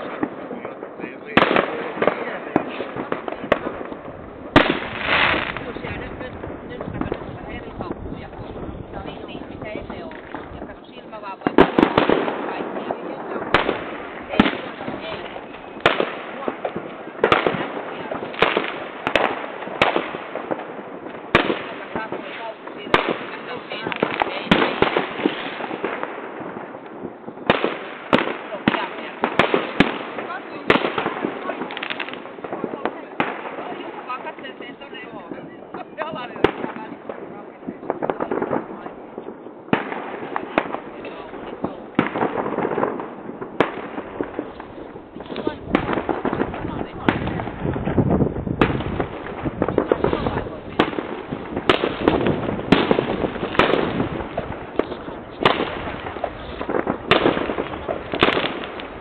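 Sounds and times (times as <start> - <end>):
fireworks exploding: 0.0 - 59.0.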